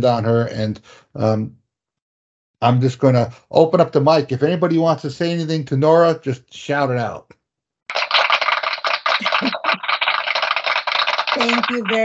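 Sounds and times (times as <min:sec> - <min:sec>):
people clapping: 0:07.9 - 0:12.0.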